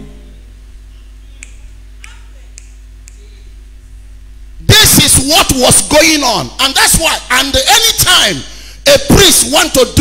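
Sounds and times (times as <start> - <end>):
low steady hum: 0.0 - 10.0
sharp snapping clicks: 1.4 - 3.3.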